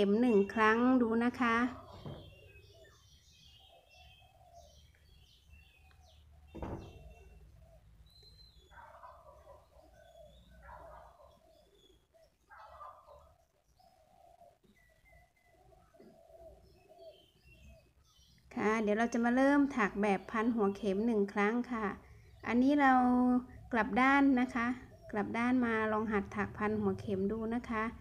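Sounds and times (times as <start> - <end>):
faint bird calls: 1.4 - 18.4.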